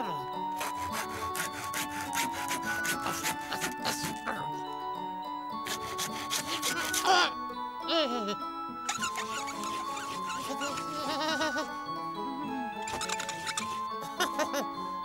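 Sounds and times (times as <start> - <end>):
cartoon background music: 0.0 - 15.0.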